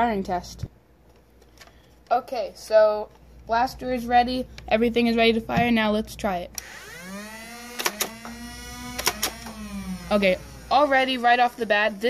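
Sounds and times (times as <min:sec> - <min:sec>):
toy blaster flywheels humming: 0:06.6 - 0:12.0
dart firing cracks: 0:07.8 - 0:08.3, 0:08.9 - 0:09.5.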